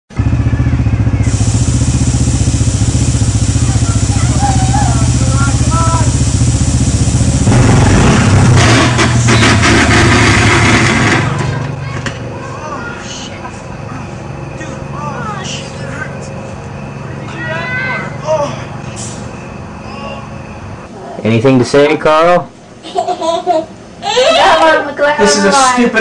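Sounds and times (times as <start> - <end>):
small atv engine running: 0.1 - 11.8.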